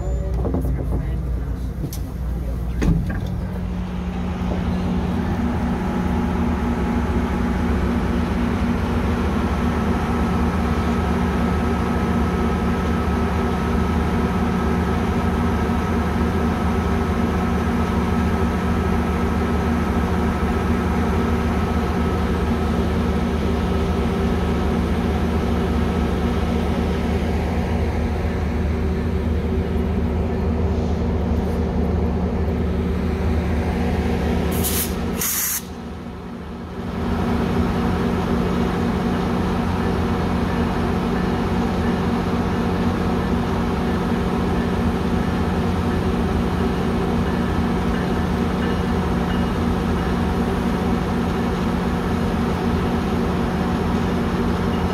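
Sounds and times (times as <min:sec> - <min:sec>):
diesel locomotive idling: 0:00.0 - 0:54.9
short high hisses: 0:34.5 - 0:35.8.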